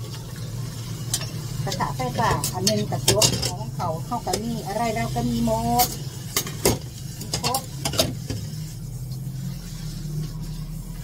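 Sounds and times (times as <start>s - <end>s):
low mechanical hum: 0.0s - 11.0s
utensil clatter: 1.1s - 8.6s.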